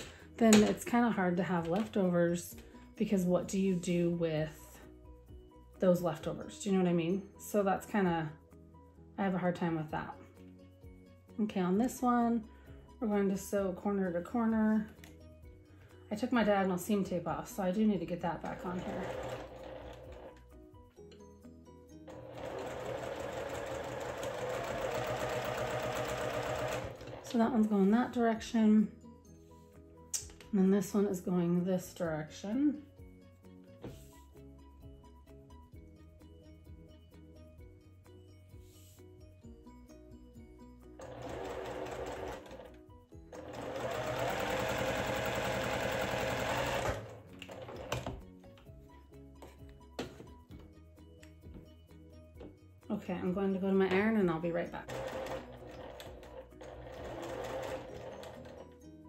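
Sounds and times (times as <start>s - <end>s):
soft background music: 0.0s - 59.0s
electric sewing machine stitching: 18.4s - 20.4s, 22.1s - 27.4s, 41.0s - 48.2s, 54.8s - 58.7s.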